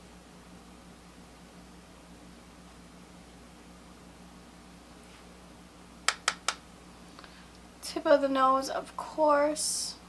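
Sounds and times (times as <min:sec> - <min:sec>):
faint room hum: 0:00.0 - 0:10.0
quick sharp taps: 0:06.1 - 0:06.6.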